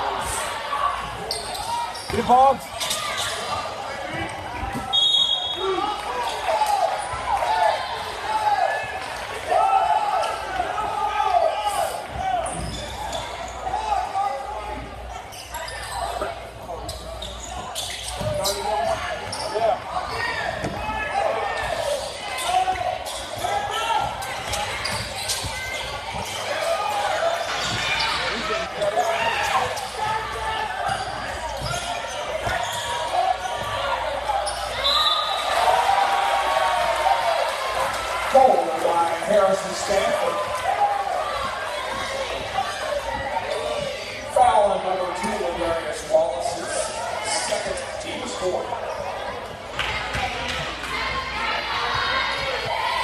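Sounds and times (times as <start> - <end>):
people chattering and calling out: 0.0 - 53.0.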